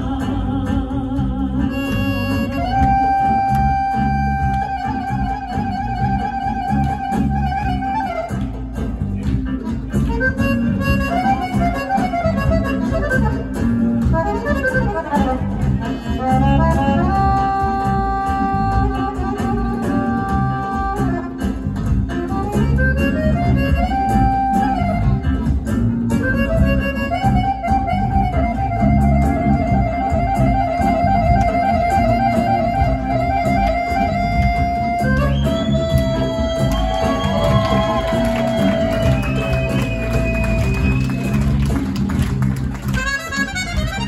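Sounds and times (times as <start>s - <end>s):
folk band playing: 0.0s - 44.0s
accordion playing: 1.6s - 44.0s.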